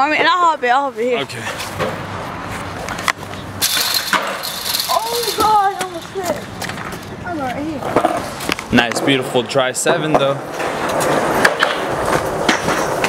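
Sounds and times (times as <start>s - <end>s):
people's voices: 4.7s - 11.0s.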